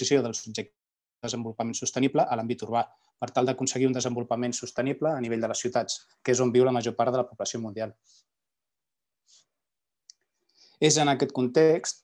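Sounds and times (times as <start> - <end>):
man speaking: 0.0 - 7.9, 10.8 - 12.0.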